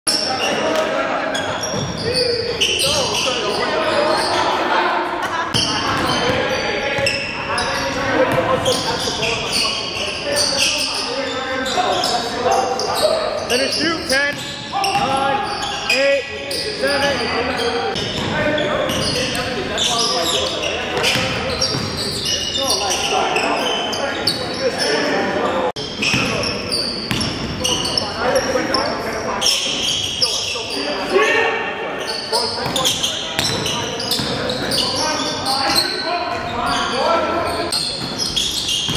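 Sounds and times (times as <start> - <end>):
players' voices echoing: 0.1 - 38.9.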